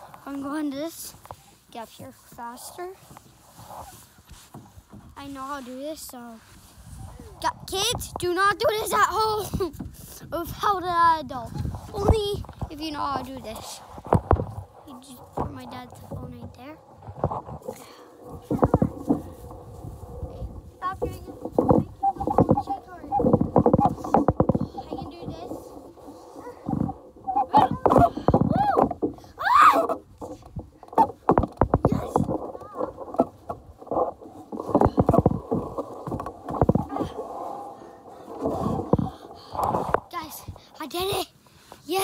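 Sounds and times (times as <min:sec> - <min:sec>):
rustling: 0:00.0 - 0:10.3, 0:11.3 - 0:42.0
short knocks: 0:15.3 - 0:40.6
child's muffled voice: 0:18.3 - 0:19.2, 0:20.7 - 0:23.3, 0:24.8 - 0:25.7, 0:27.4 - 0:29.9, 0:31.8 - 0:33.0.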